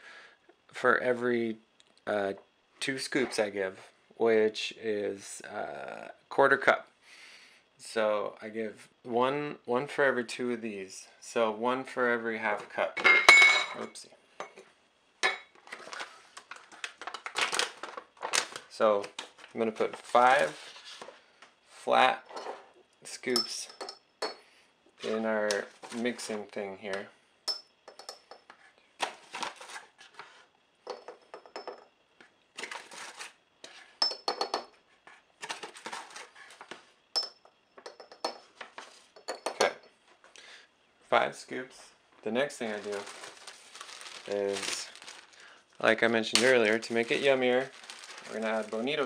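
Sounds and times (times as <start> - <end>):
plastic pouch rustling: 15.7 - 21.1, 29.0 - 30.4, 42.6 - 49.0.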